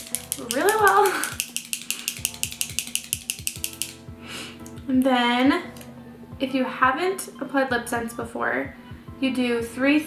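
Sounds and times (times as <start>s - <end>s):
lipstick tube rattling: 0.0s - 4.0s
background music: 0.0s - 10.0s.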